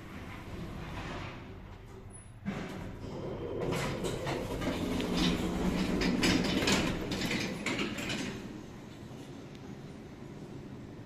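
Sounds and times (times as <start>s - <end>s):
lift doors sliding open: 0.0s - 11.0s.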